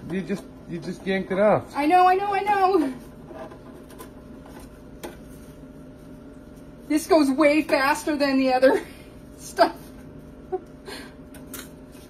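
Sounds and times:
cotton candy machine running: 0:00.0 - 0:12.0.

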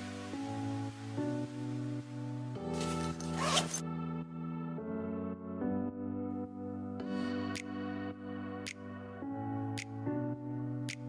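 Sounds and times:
background music of held chords: 0:00.0 - 0:11.0
backpack zipper pulled open: 0:02.8 - 0:03.8.

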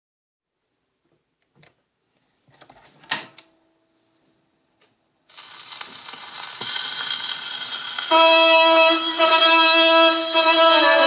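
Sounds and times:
record surface hiss and crackles: 0:00.5 - 0:08.1.

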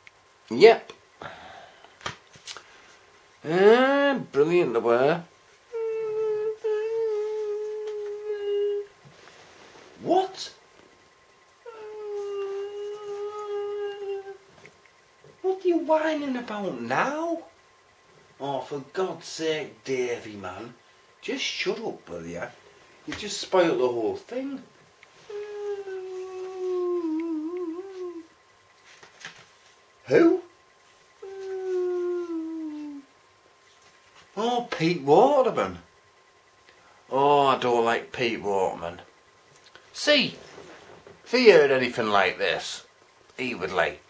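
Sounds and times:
person whining on a high note: 0:05.7 - 0:08.9, 0:11.6 - 0:14.5, 0:25.2 - 0:28.3, 0:31.2 - 0:33.1.

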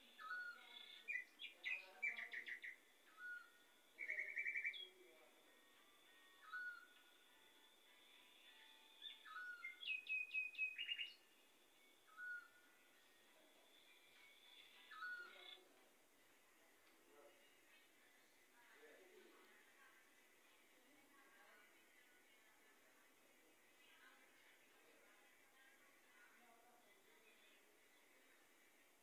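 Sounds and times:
bird chirps and trills: 0:00.2 - 0:04.9, 0:09.0 - 0:11.2.

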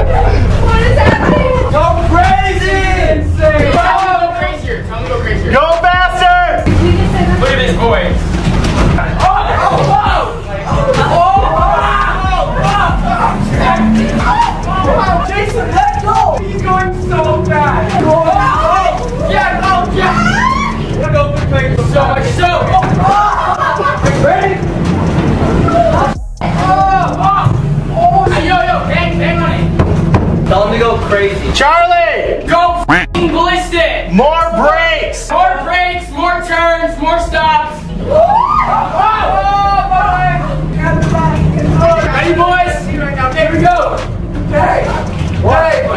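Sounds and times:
voices shouting: 0:00.0 - 0:29.8, 0:34.3 - 0:45.9
truck rumble: 0:00.0 - 0:31.6, 0:37.2 - 0:45.9
thuds and bangs: 0:01.0 - 0:02.4, 0:08.2 - 0:10.2, 0:22.7 - 0:23.3, 0:29.6 - 0:30.7.

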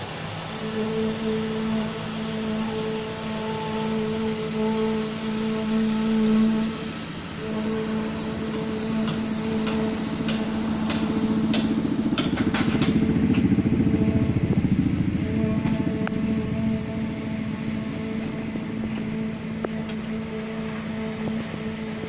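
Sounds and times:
machinery engine running: 0:00.0 - 0:22.0.

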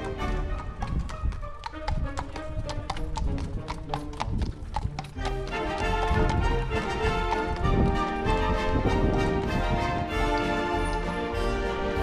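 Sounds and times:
background music: 0:00.0 - 0:12.0
horse hooves trotting on asphalt: 0:00.0 - 0:12.0.

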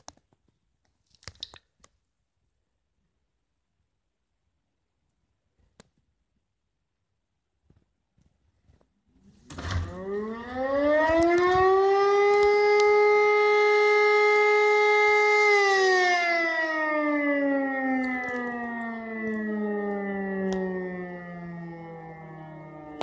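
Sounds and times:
siren winding up and down: 0:09.6 - 0:23.0.

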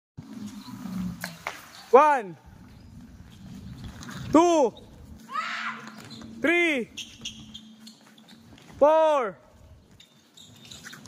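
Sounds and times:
man calling out loudly: 0:08.8 - 0:09.4.

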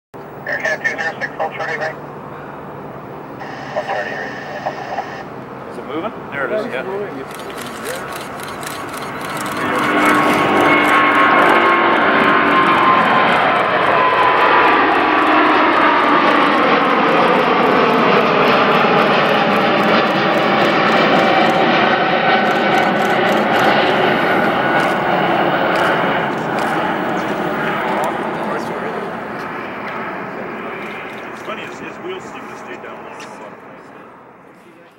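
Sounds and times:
jet engines roaring at takeoff: 0:00.2 - 0:34.9.

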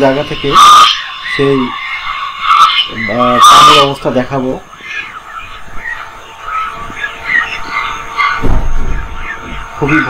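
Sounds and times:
frogs calling: 0:00.0 - 0:10.0.

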